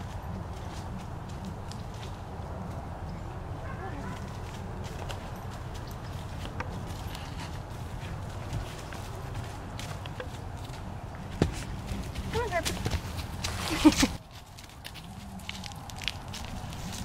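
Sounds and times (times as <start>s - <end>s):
horse hoofbeats on soft dirt: 0.0s - 2.8s, 3.6s - 17.0s.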